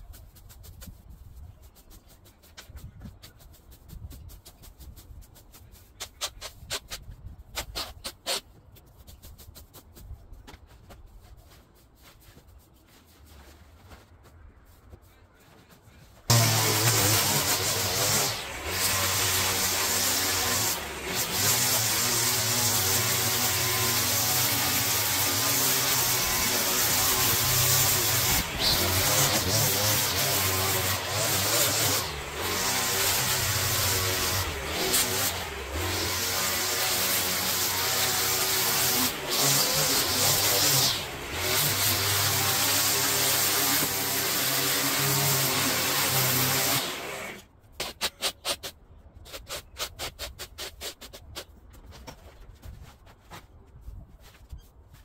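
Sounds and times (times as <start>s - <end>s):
line trimmer cutting grass: 16.3s - 48.4s.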